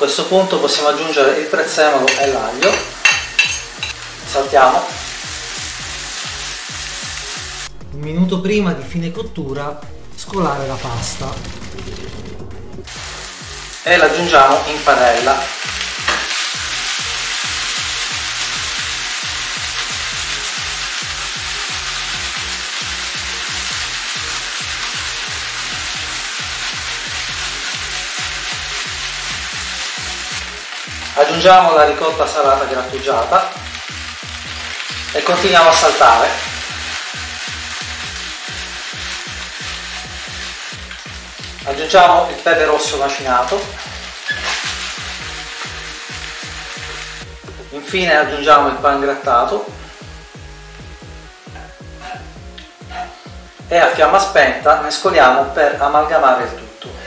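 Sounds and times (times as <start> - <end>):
eggplant sizzling in oil: 0.1 - 7.8, 10.5 - 57.0
background music with steady beat: 2.0 - 57.0.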